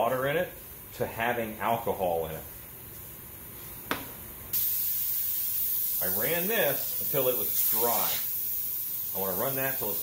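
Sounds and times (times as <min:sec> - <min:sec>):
airbrush spraying hiss: 0:04.5 - 0:10.0.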